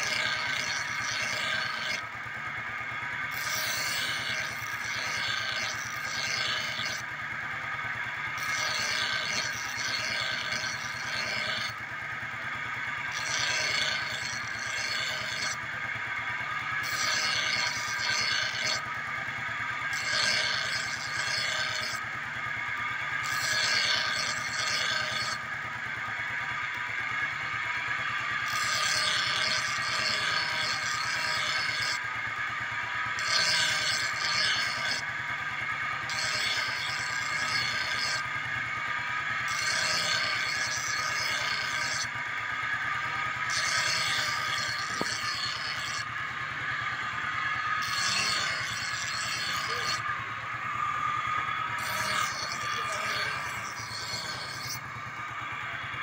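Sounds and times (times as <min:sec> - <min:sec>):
grinding wheel whining: 0:00.0 - 0:56.0
steel blade grinding rasp: 0:00.0 - 0:56.0
motorcycle engine running: 0:01.6 - 0:03.4, 0:06.6 - 0:08.4, 0:11.6 - 0:13.1, 0:13.9 - 0:17.0, 0:18.8 - 0:20.0, 0:21.9 - 0:23.3, 0:25.2 - 0:28.6, 0:31.9 - 0:39.5, 0:41.6 - 0:45.1, 0:46.0 - 0:56.0.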